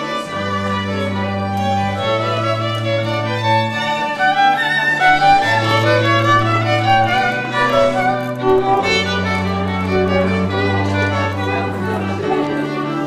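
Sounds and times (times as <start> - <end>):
held low bass notes: 0.0 - 13.0
violin melody: 0.0 - 13.0.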